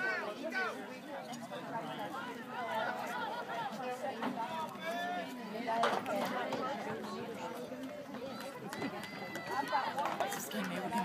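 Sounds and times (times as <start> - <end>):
spectators talking and calling out: 0.0 - 11.0.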